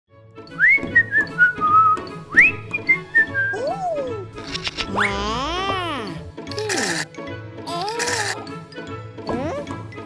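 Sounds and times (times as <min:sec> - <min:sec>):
background music with steady beat: 0:00.1 - 0:10.0
person whistling a tune: 0:00.5 - 0:03.7.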